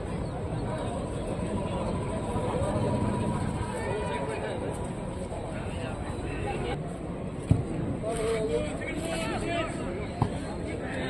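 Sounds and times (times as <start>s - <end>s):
people shouting and chattering: 0.0s - 11.0s.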